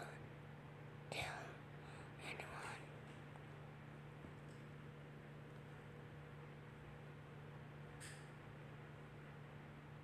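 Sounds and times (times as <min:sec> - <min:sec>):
faint whispering: 0:00.0 - 0:00.3, 0:01.1 - 0:03.0
steady low hum: 0:00.0 - 0:10.0.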